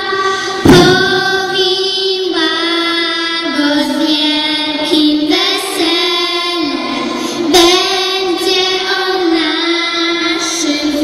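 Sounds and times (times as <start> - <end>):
girls singing a carol: 0.0 - 11.0.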